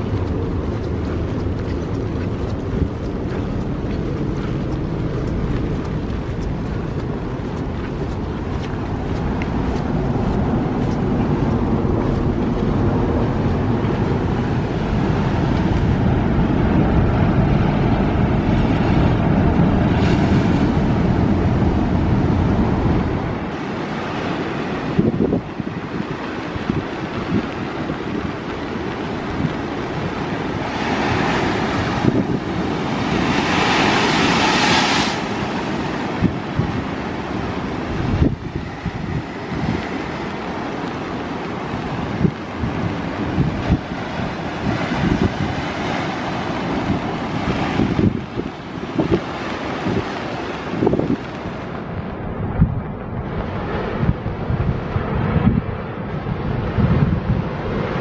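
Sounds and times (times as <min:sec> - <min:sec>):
sea surf breaking over rocks: 0:00.0 - 0:58.0
wind buffeting microphone: 0:00.0 - 0:58.0.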